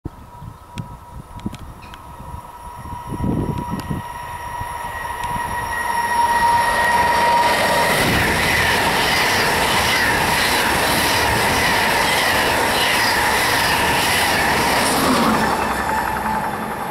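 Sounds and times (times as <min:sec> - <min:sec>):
train wheels rushing on rail: 0:00.2 - 0:16.9
steady high tone: 0:00.3 - 0:16.9
wavering high wheel squeal: 0:01.8 - 0:16.9.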